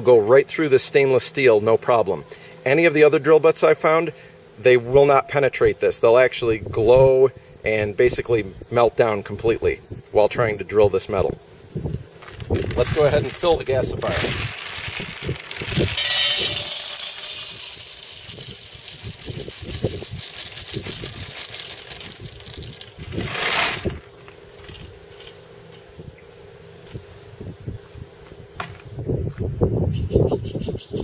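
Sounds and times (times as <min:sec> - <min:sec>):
pellets rattling into metal pot: 0:12.4 - 0:24.0.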